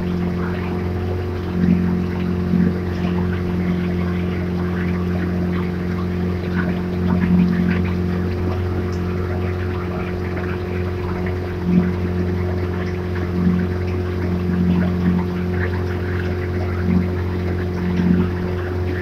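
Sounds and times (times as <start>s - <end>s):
outboard motor humming: 0.0s - 19.0s
water washing along hull: 0.0s - 19.0s.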